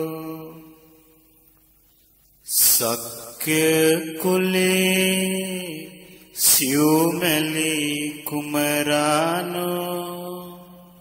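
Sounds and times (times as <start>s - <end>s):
person chanting: 0.0s - 1.3s, 2.4s - 11.0s.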